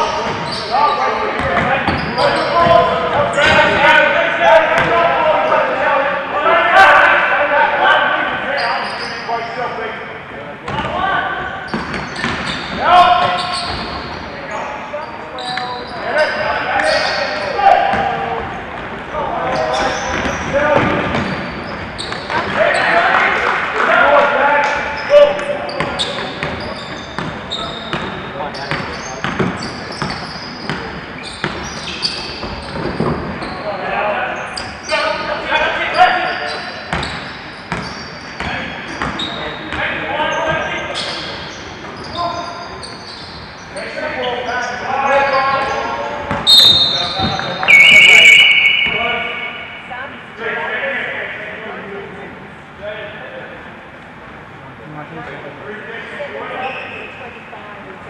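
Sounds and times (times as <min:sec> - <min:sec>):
basketball bouncing on court: 0:01.4 - 0:03.8, 0:11.7 - 0:14.1, 0:19.8 - 0:21.5, 0:25.4 - 0:31.7, 0:36.9 - 0:39.3, 0:46.3 - 0:47.7
short shrill whistle: 0:46.4 - 0:49.6.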